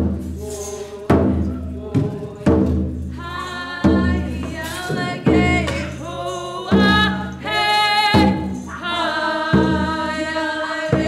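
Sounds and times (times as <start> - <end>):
group singing: 0.0 - 11.0
slow drum beats: 0.0 - 11.0.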